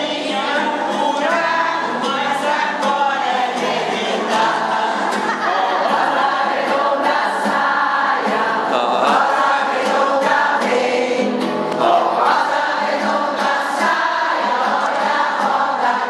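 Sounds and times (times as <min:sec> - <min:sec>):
choir of women singing: 0:00.0 - 0:16.0.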